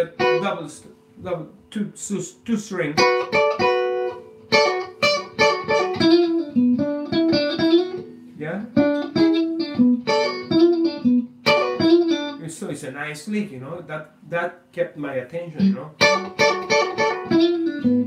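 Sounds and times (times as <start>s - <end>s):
electric guitar blues lick: 0.0s - 1.4s, 2.2s - 12.5s, 15.6s - 18.0s.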